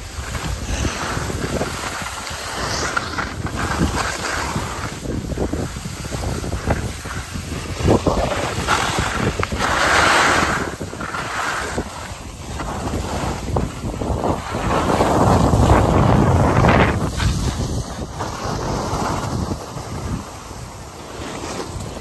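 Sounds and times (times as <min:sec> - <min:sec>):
wind buffeting microphone: 0:00.0 - 0:21.0
skis sliding over snow: 0:00.0 - 0:22.0.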